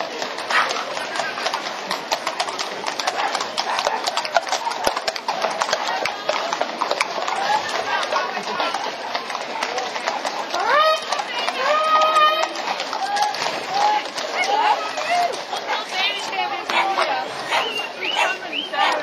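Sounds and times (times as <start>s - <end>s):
crowd voices: 0.0s - 19.0s
horse hooves clip-clopping on pavement: 0.0s - 19.0s.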